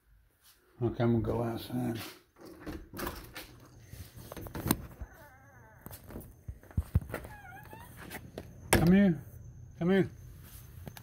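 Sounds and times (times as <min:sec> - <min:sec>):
door knob turning and door opening: 0:02.4 - 0:03.6
door squeaking: 0:07.0 - 0:09.0.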